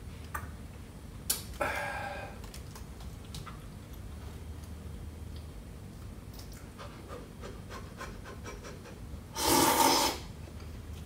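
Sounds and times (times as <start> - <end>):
slurping noodles: 9.4 - 10.3.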